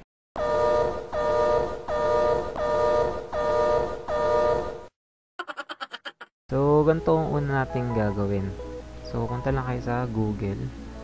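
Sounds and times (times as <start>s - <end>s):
pulsing electronic horn tone: 0.4s - 4.7s.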